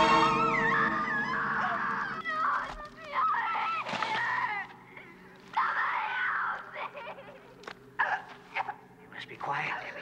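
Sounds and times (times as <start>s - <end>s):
shrill wailing voices: 0.0s - 4.7s.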